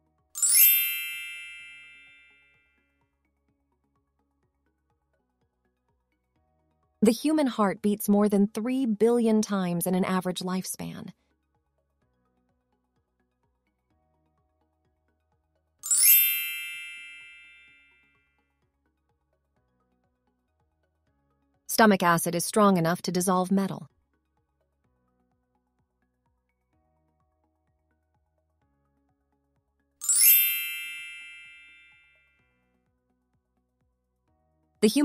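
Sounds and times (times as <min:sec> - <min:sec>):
swish into ringing chime: 0:15.9 - 0:17.6, 0:30.0 - 0:31.9.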